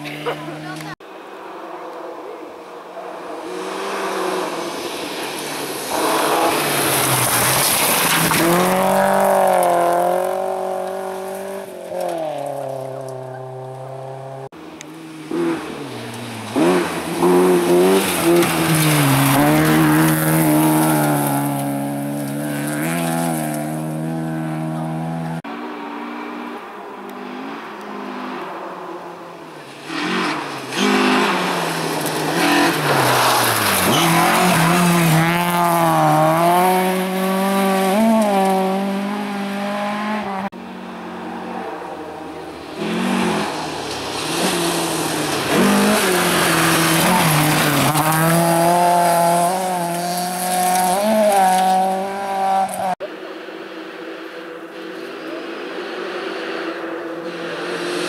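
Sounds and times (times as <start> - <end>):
rally car engines revving: 0.0 - 58.0
gravel spraying from tyres: 3.5 - 12.6, 15.1 - 24.0, 29.6 - 38.7, 42.6 - 52.9.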